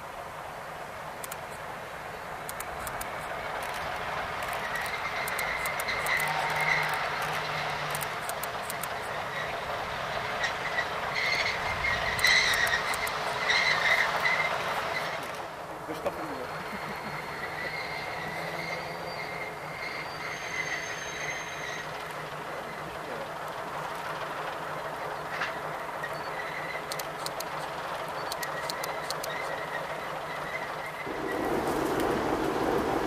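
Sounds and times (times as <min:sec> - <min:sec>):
diesel locomotive running: 0:00.0 - 0:33.0
sharp clicks: 0:01.2 - 0:01.6, 0:02.4 - 0:09.0, 0:12.1 - 0:13.3, 0:26.8 - 0:29.6
high wheel squeal: 0:04.5 - 0:15.4, 0:16.3 - 0:23.0, 0:25.2 - 0:27.0, 0:27.6 - 0:31.8.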